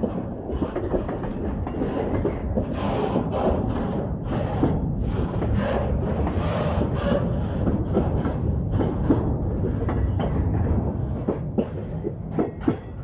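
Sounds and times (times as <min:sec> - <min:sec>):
freight wagons rumbling: 0:00.0 - 0:13.0
wheels clicking over rail joints: 0:00.0 - 0:13.0.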